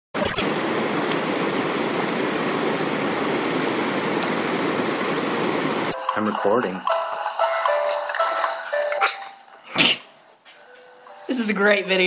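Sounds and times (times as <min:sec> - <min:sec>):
running water rushing: 0:00.2 - 0:05.9.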